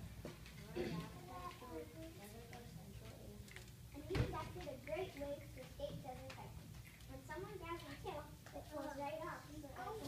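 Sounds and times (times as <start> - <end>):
faint indistinct voices: 0.4 - 10.0.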